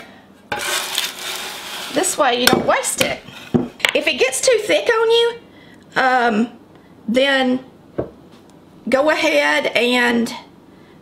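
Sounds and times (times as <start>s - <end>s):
scraper scraping across paper: 0.6s - 2.1s.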